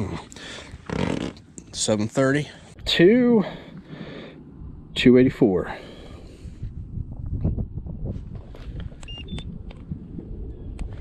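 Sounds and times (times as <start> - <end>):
wind rumble: 2.8 - 11.0
short electronic beeps: 9.0 - 9.5.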